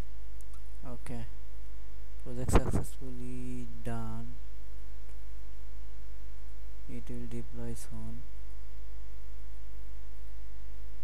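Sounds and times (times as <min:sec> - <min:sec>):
electrical hum: 0:00.0 - 0:11.0
person speaking: 0:00.8 - 0:01.4, 0:02.2 - 0:04.4, 0:06.9 - 0:08.3.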